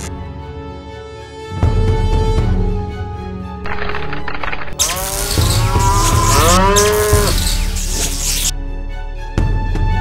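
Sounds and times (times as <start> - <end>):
background music: 0.0 - 10.0
crackling electric hiss: 3.7 - 8.5
cartoon bulls mooing: 4.8 - 7.7.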